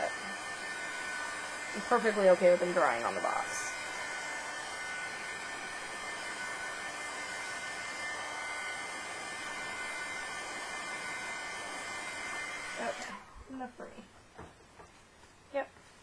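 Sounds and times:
heat tool fan blowing: 0.0 - 14.0.

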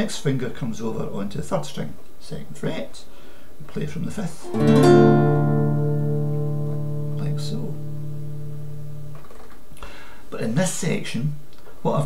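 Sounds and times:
classical guitar chord ringing: 4.4 - 9.6.

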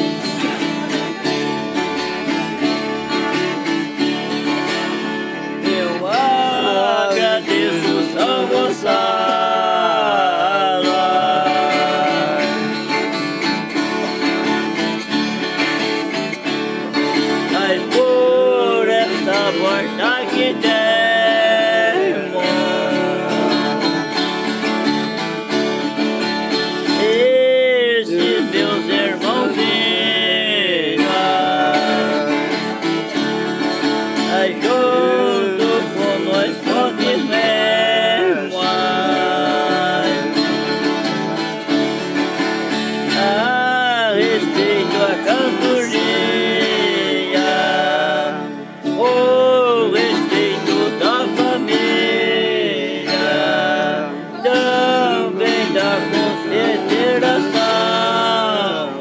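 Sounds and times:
viola caipira and guitar strumming: 0.0 - 59.0
men singing: 5.6 - 14.6, 17.0 - 25.2, 26.8 - 59.0.

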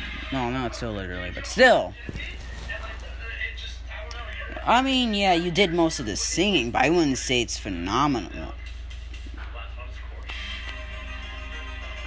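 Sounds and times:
faint room noise: 0.0 - 12.0
steady low hum: 0.0 - 12.0.

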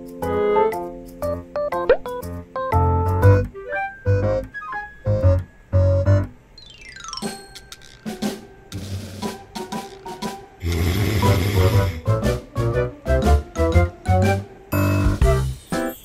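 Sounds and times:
playful keyboard music over beat: 0.0 - 16.0.

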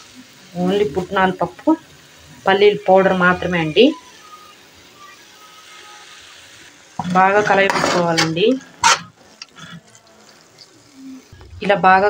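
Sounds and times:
curry sizzling in a pot: 0.0 - 12.0.

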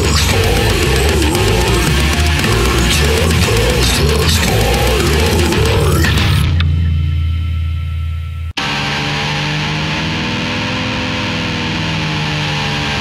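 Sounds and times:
distorted guitar chord ringing: 0.0 - 13.0
droning held tones: 0.0 - 13.0.

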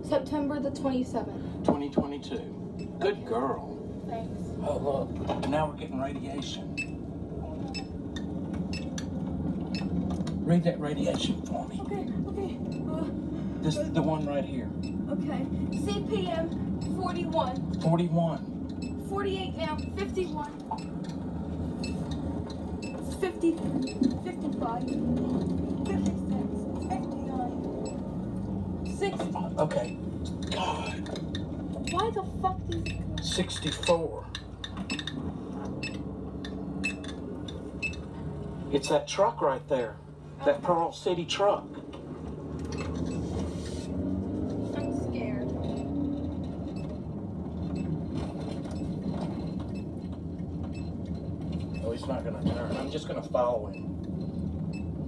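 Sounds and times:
engine and road rumble: 0.0 - 55.0.

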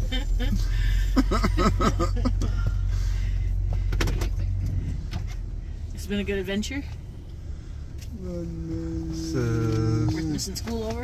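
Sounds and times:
idling engine rumble inside cabin: 0.0 - 11.0.

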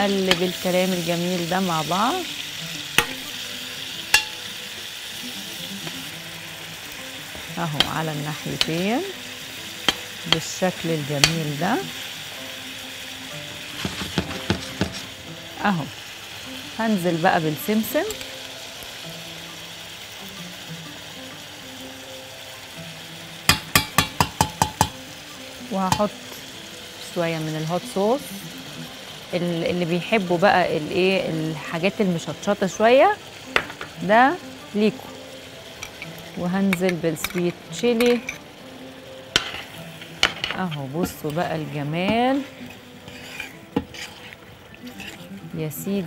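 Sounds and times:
shrimp sizzling in oil: 0.0 - 46.0
metal spoon clinking on pan: 4.1 - 4.4, 23.5 - 25.0, 36.7 - 38.4, 39.3 - 40.7
metal spoon knocking against pan: 13.8 - 15.1, 23.5 - 25.0
sauce pouring: 42.4 - 45.4.

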